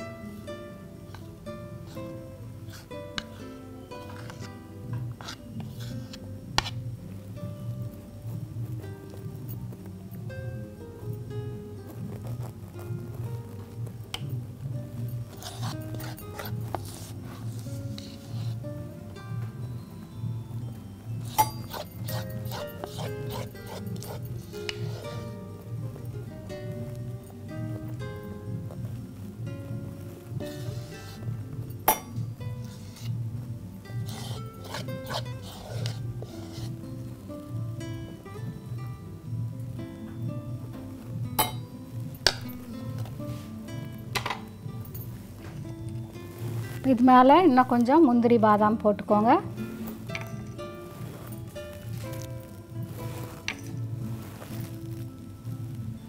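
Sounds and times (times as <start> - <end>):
metal spoon scraping ceramic bowl: 4.0 - 6.8, 15.3 - 18.6, 21.2 - 25.4, 31.9 - 33.2, 34.0 - 36.8.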